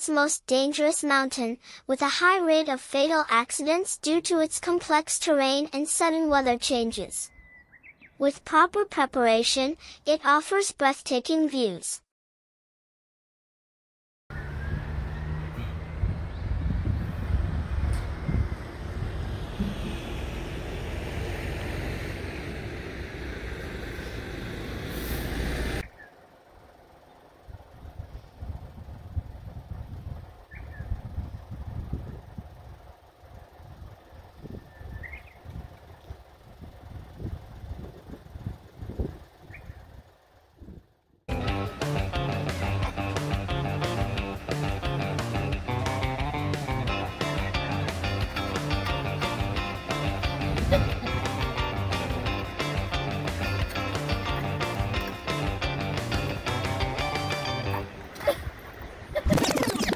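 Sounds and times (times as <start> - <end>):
road traffic noise: 5.0 - 10.1, 14.3 - 59.9
vehicle passing close by: 14.3 - 25.9
wind rumbling on microphone: 15.6 - 21.0, 27.4 - 32.9, 33.6 - 41.0
music: 41.3 - 57.9.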